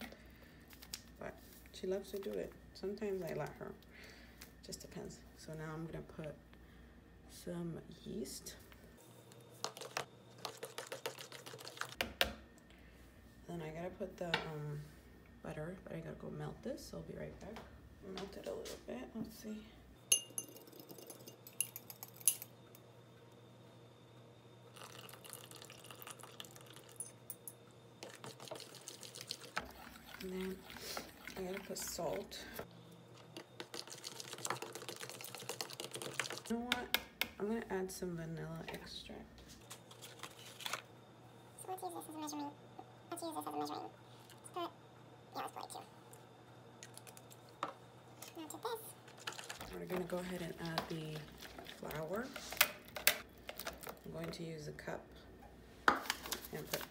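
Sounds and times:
fork stirring batter: 9.6s - 12.0s
light glass clinks: 20.1s - 22.4s.

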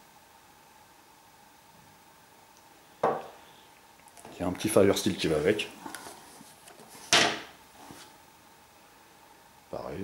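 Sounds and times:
faint handling noise: 4.0s - 8.2s.

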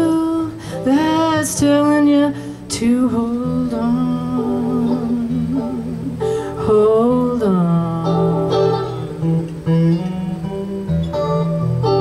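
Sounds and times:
electric guitar: 0.0s - 12.0s.

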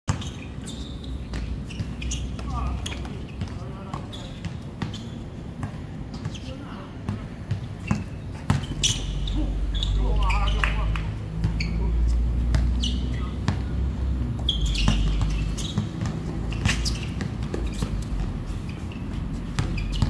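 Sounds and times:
basketball bouncing on court: 0.1s - 11.8s, 12.4s - 20.0s.

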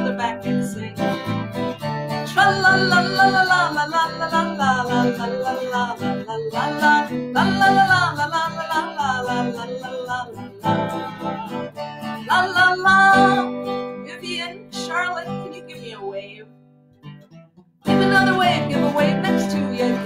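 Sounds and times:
woman singing: 0.0s - 16.5s, 17.9s - 20.0s
acoustic guitar strumming: 0.0s - 20.0s.

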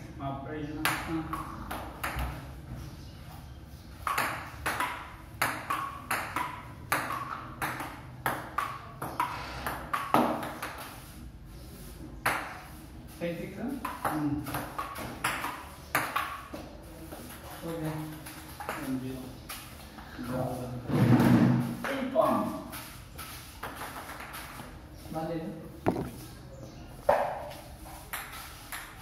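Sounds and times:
table tennis ball hitting paddles: 0.8s - 2.5s, 4.0s - 11.2s, 12.2s - 12.8s, 13.8s - 17.4s, 25.8s - 26.4s, 28.0s - 29.0s.

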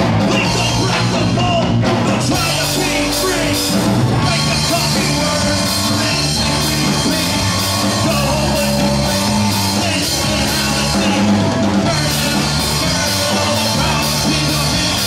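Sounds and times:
bass guitar: 0.0s - 15.0s
drum kit beat: 0.0s - 15.0s
electric guitar: 0.0s - 15.0s
person singing into microphone: 0.3s - 15.0s.

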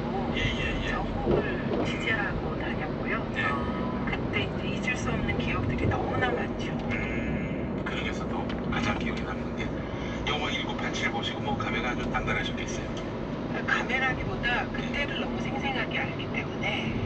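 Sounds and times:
voices speaking: 0.0s - 9.8s
constant hum: 0.0s - 17.0s.

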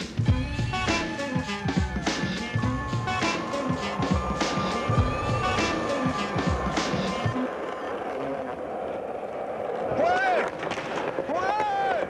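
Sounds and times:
skateboard wheels rolling: 0.0s - 12.0s.

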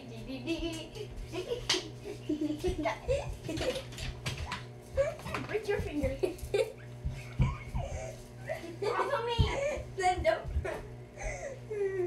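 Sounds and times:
steady low hum: 0.0s - 12.0s
girls' voices: 5.0s - 6.7s, 8.6s - 10.8s.

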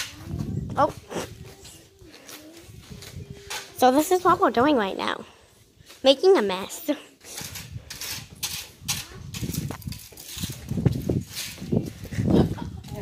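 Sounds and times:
plastic scoop scraping concrete: 7.2s - 11.7s.

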